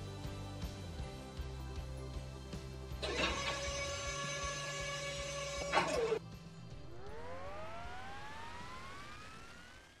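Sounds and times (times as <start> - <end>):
jet engine spool-up whine: 3.0 - 10.0.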